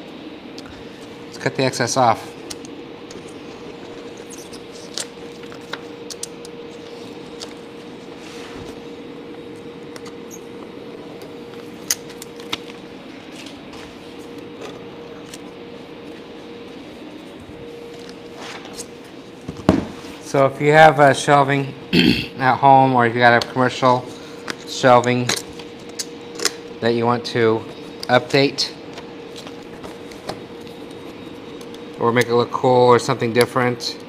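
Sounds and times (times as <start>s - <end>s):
steady background hum: 0.0s - 34.0s.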